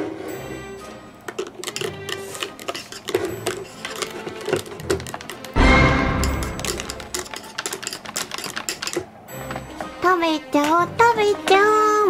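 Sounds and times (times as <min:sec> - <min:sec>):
light background music: 0:00.0 - 0:12.0
rapid irregular clicking: 0:01.2 - 0:05.6, 0:06.2 - 0:09.6.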